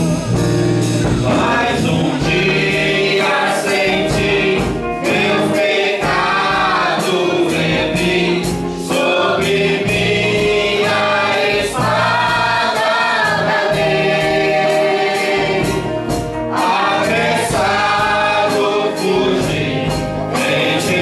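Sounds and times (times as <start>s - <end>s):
instrumental accompaniment with beat: 0.0s - 21.0s
man and woman singing gospel: 1.0s - 21.0s.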